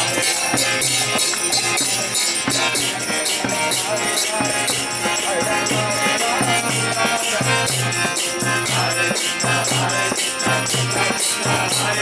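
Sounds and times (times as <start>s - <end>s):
hand cymbals jangling: 0.0s - 12.0s
harmonium sustained notes: 0.0s - 12.0s.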